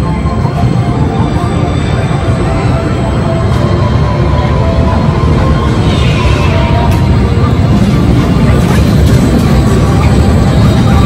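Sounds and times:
indistinct crowd voices: 0.0s - 11.0s.

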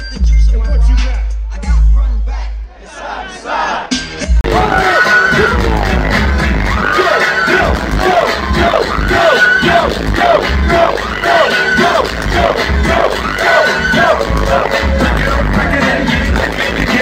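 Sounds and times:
loud live music with heavy bass beat: 0.0s - 2.7s, 3.7s - 17.0s.

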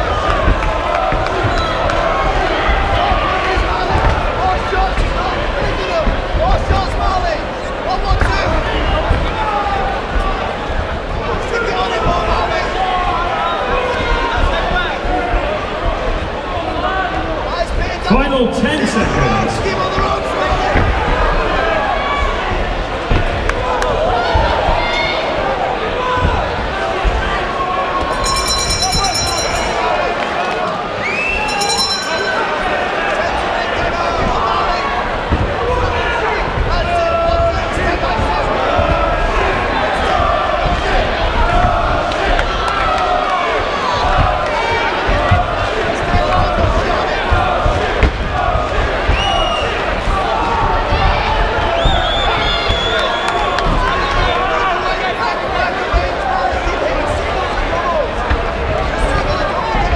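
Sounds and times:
crowd shouting and cheering: 0.0s - 59.9s
high-pitched ringing tones: 28.2s - 30.2s, 31.4s - 32.7s.

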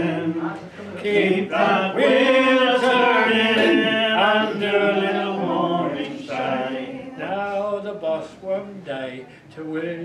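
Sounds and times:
group singing: 0.0s - 9.1s.

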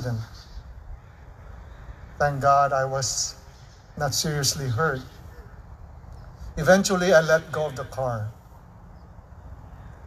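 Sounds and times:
man speaking: 2.2s - 5.6s, 6.6s - 8.4s.

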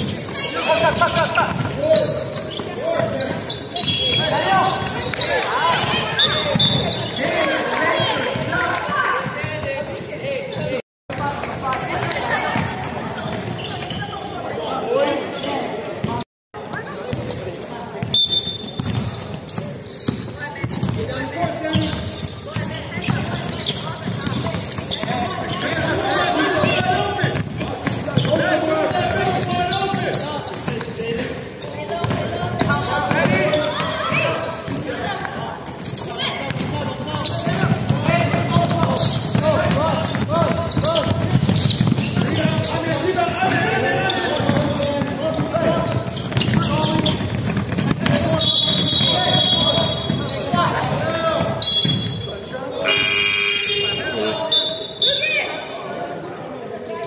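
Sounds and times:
basketball bouncing on wooden court: 0.0s - 14.3s, 15.9s - 52.2s
players' voices and shouts: 0.0s - 57.0s.

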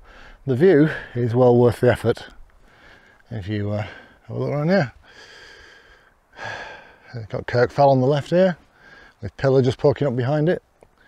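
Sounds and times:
man breathing heavily: 0.0s - 1.2s, 2.6s - 4.3s, 5.0s - 7.1s, 8.7s - 9.2s.

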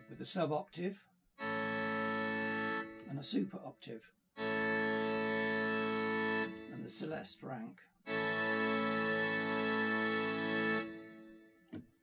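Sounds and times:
pipe organ chord: 1.4s - 3.1s, 4.4s - 7.1s, 8.0s - 11.6s.

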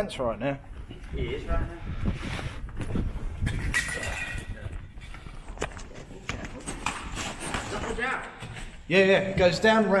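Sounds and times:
footsteps: 0.7s - 9.7s.

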